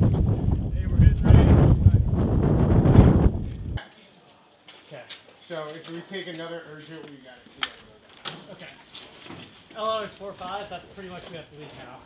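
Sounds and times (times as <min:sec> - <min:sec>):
wind buffeting microphone: 0:00.0 - 0:03.8.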